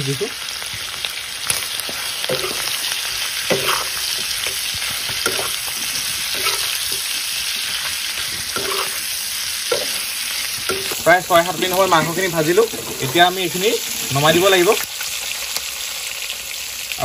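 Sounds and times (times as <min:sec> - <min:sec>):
meat sizzling in hot fat: 0:00.0 - 0:17.0
metal spoon scraping pan: 0:02.2 - 0:14.8.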